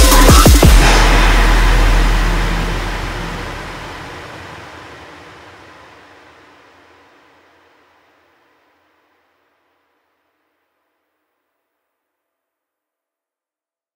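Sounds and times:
deep sub-bass: 0:00.0 - 0:04.8
noisy synth drone: 0:00.0 - 0:08.3.

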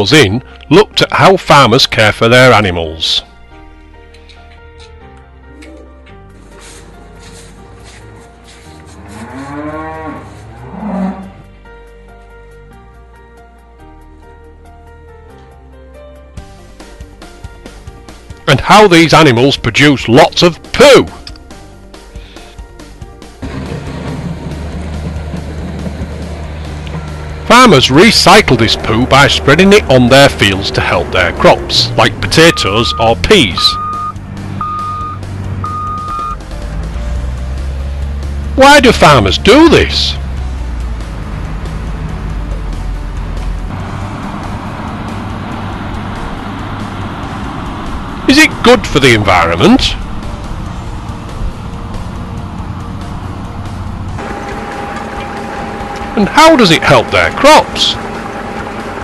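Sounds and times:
cattle mooing: 0:08.8 - 0:11.5
diesel engine drone: 0:21.6 - 0:59.0
reversing alarm beeping: 0:32.4 - 0:36.4.

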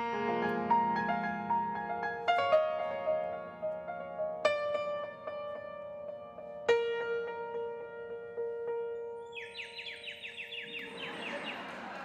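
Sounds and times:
piano chord: 0:00.0 - 0:11.6
bird whistle chirping: 0:09.3 - 0:12.0
applause: 0:10.8 - 0:12.0.

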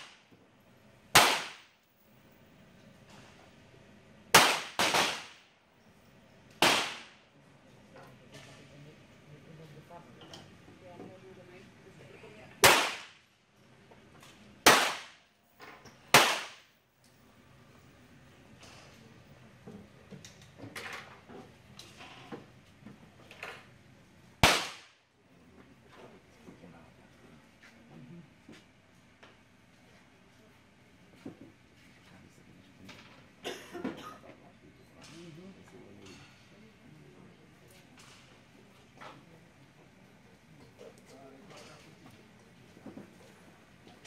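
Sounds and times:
faint distant gunshots: 0:01.2 - 0:01.7, 0:06.6 - 0:07.2, 0:12.6 - 0:13.2, 0:14.6 - 0:15.2, 0:16.1 - 0:16.7, 0:24.4 - 0:25.0
pistol shots cracking: 0:01.2 - 0:01.7, 0:04.3 - 0:05.5, 0:06.6 - 0:07.2, 0:12.6 - 0:13.2, 0:14.6 - 0:15.2, 0:16.1 - 0:16.7, 0:24.4 - 0:25.0.

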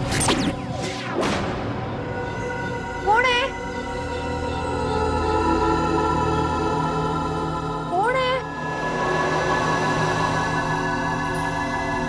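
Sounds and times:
suspense music with held tones: 0:00.0 - 0:12.0.

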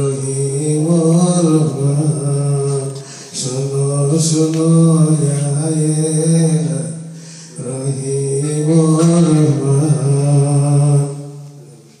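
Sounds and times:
man singing unaccompanied: 0:00.0 - 0:12.0.

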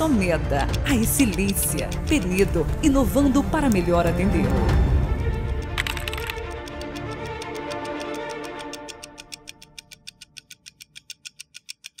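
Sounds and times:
background music: 0:00.0 - 0:11.7
steady ticking clicks: 0:00.0 - 0:12.0.

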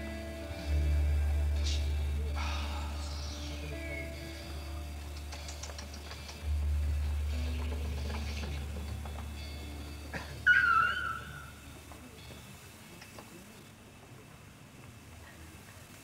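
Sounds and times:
sustained bass note: 0:00.0 - 0:05.2, 0:06.4 - 0:11.8.

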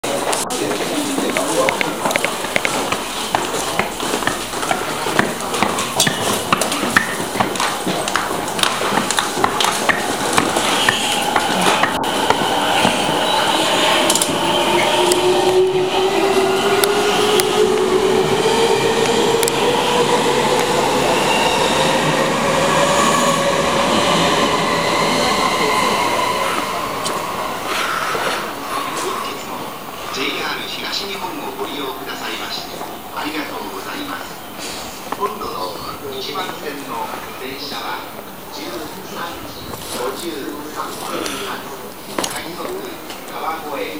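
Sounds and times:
station crowd noise: 0:00.0 - 0:43.9
electric train motors whining: 0:21.8 - 0:25.4.

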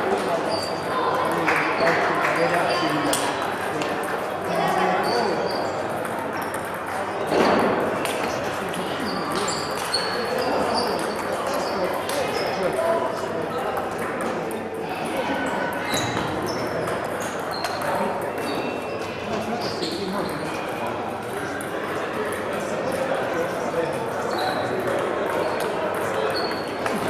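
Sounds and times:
background voices chatter: 0:00.0 - 0:27.0.

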